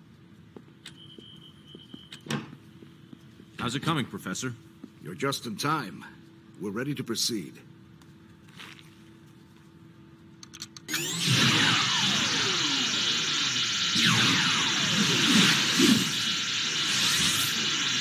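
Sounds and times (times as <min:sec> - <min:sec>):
electronic noise with falling whistles: 0:00.9 - 0:02.3, 0:10.9 - 0:18.0.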